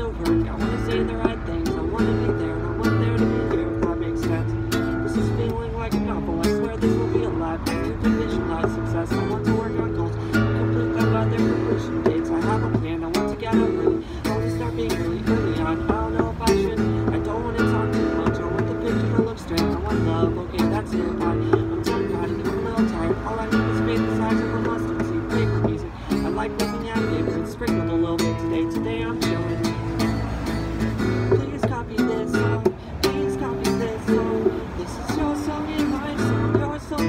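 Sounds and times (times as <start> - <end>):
acoustic guitar strumming: 0.0 - 37.0.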